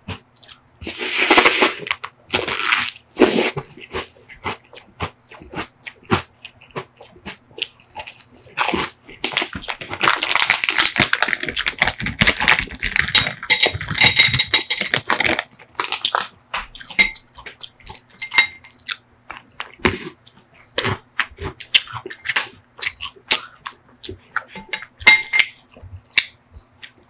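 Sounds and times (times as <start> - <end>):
crunching sugar cone: 1.2 - 3.6
plastic bag crinkling: 8.6 - 16.8.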